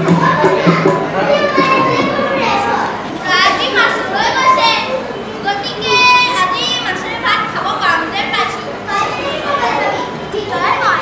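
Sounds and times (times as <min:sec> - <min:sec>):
children talking and calling out: 0:00.0 - 0:11.0.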